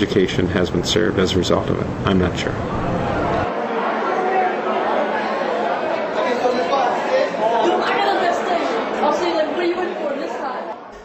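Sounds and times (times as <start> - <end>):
crowd chatter: 2.2 - 11.0.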